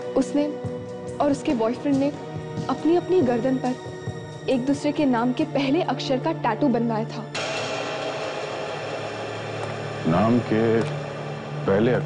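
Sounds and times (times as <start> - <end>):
hissing dramatic score drone: 7.2 - 12.0.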